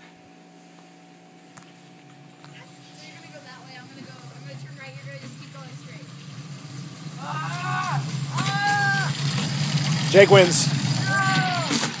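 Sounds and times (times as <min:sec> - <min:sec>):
cart wheels rumbling on asphalt: 0:02.5 - 0:12.0
people yelling: 0:07.2 - 0:09.2, 0:10.1 - 0:12.0.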